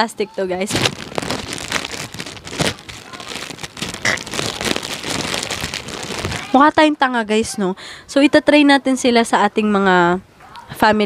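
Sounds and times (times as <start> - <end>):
plastic bag crinkling: 0.6 - 6.8.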